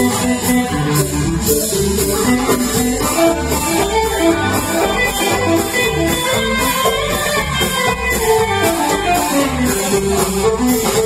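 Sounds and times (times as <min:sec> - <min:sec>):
drums on cymbals: 0:00.0 - 0:11.0
electric guitar: 0:00.0 - 0:11.0
upright bass: 0:00.0 - 0:11.0.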